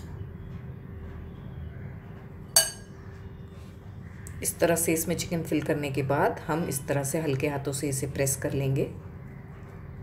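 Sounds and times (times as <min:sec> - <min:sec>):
metal spoon clinking glass bowl: 0:02.6 - 0:02.9.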